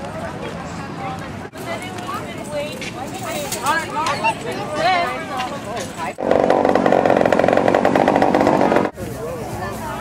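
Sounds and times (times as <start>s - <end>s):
murmur of people talking: 0.0s - 10.0s.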